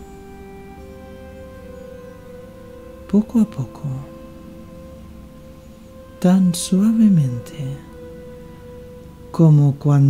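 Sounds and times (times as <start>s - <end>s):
ambient meditation music drone: 0.0s - 10.0s.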